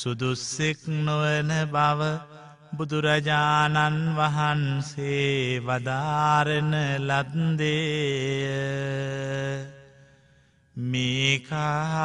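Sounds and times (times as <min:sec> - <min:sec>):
man chanting: 0:00.0 - 0:10.1, 0:10.8 - 0:12.0.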